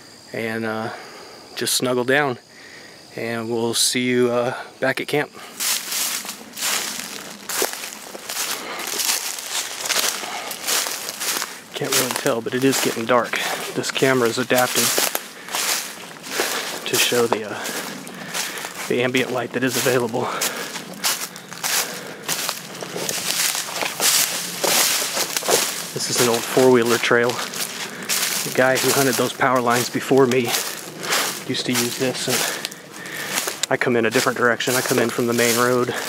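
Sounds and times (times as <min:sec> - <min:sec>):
footsteps crunching dry leaves: 0:05.4 - 0:36.0.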